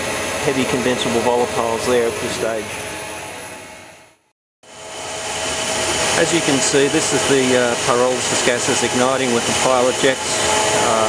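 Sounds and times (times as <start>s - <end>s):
faint machinery hum: 0.0s - 11.0s
machinery hiss-like rush: 4.7s - 11.0s.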